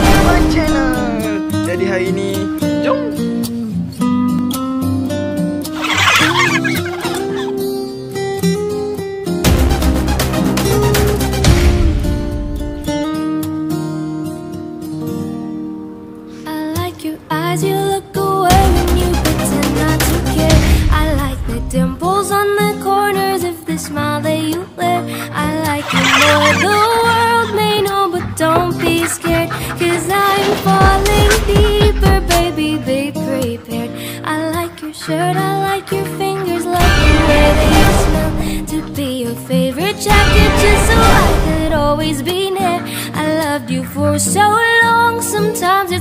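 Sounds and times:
pop love song: 0:00.0 - 0:03.9, 0:16.3 - 0:46.0
guitar music: 0:00.0 - 0:46.0
poultry calls: 0:05.7 - 0:07.8, 0:23.7 - 0:40.1.

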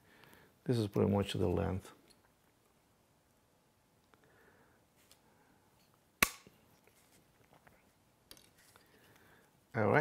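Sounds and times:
sharp snap: 0:06.2 - 0:06.6.

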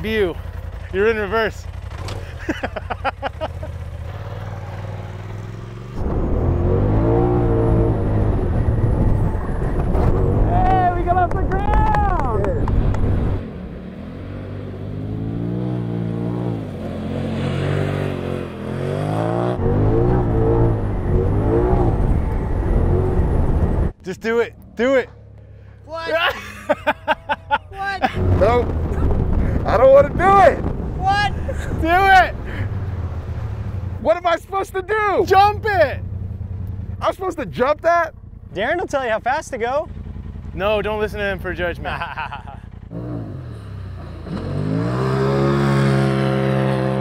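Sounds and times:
engine revving hard: 0:05.4 - 0:10.6, 0:14.4 - 0:23.7, 0:42.9 - 0:47.0.

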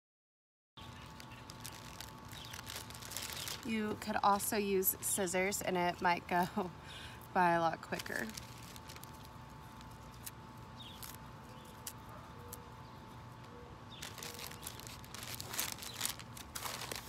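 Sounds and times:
newspaper crinkling: 0:00.8 - 0:04.2, 0:07.8 - 0:12.1, 0:14.0 - 0:17.0
greens torn over plastic bag: 0:00.8 - 0:04.5, 0:07.4 - 0:12.7, 0:14.0 - 0:17.0.

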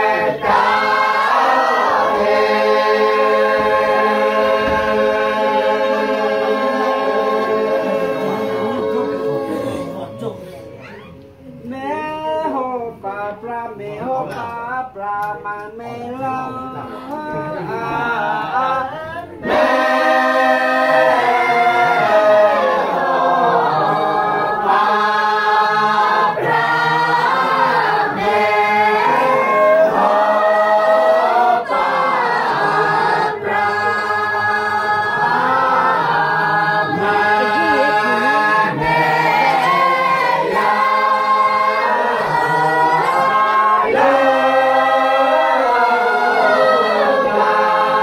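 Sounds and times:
group singing a hymn a cappella: 0:00.0 - 0:48.0
single voice singing: 0:00.0 - 0:48.0.

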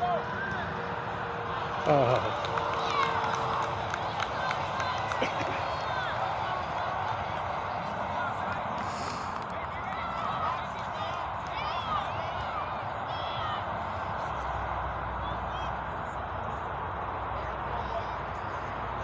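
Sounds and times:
distant people shouting: 0:00.0 - 0:16.3
outdoor murmur: 0:00.0 - 0:19.0.

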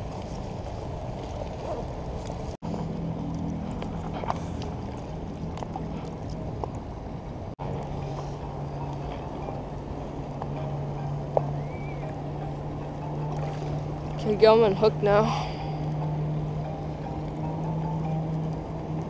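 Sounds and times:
low motor hum: 0:00.0 - 0:19.0
water lapping and sloshing: 0:00.0 - 0:19.0.

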